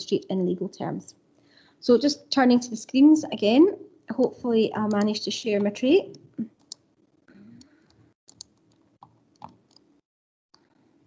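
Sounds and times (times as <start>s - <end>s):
computer mouse clicks: 4.9s - 5.2s.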